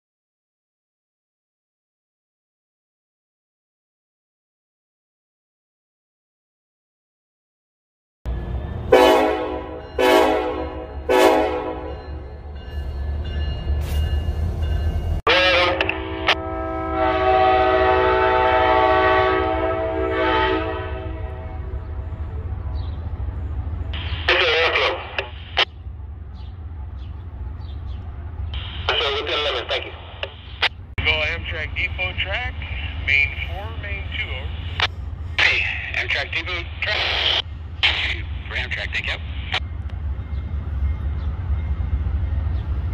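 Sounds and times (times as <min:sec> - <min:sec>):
train horn blasts: 0:08.8 - 0:12.2, 0:15.3 - 0:21.8.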